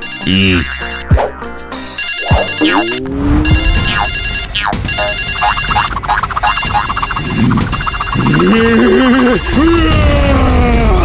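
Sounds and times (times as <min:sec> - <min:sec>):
phone ringtone beeps: 0:00.0 - 0:01.2, 0:01.9 - 0:08.8
background music: 0:00.0 - 0:11.0
downward-sliding swoops: 0:02.4 - 0:04.1.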